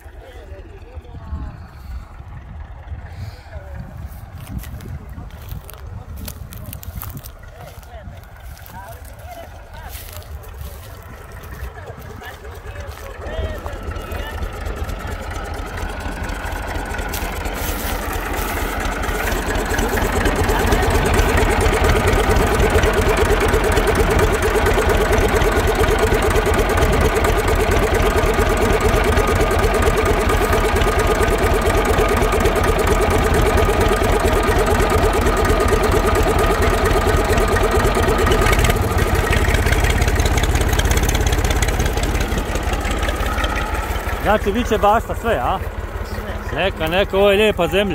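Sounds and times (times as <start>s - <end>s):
tractor diesel engine chugging: 0.0s - 47.9s.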